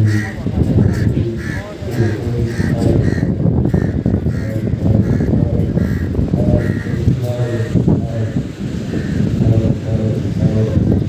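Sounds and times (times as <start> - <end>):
crows cawing: 0.0 - 9.7
loud low background noise: 0.0 - 11.0.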